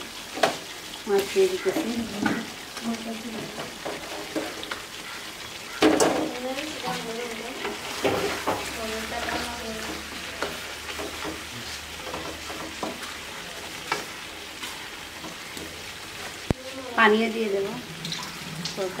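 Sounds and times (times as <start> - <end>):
food sizzling in a pan: 0.0 - 19.0
wooden spatula scraping a pan: 0.3 - 17.7.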